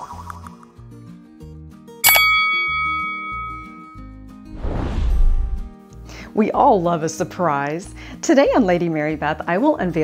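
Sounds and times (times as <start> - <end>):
background music: 0.0 - 10.0
bell ding: 2.0 - 4.1.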